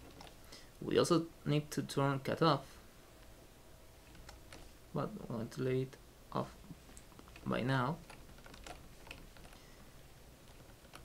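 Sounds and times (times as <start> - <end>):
faint keyboard clicks: 0.0 - 0.4, 4.0 - 4.7, 6.9 - 9.8, 10.4 - 11.0
low room hum: 0.0 - 11.0.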